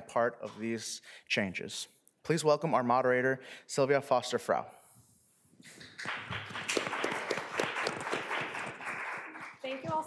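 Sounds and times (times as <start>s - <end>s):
audience applause: 5.7s - 10.0s.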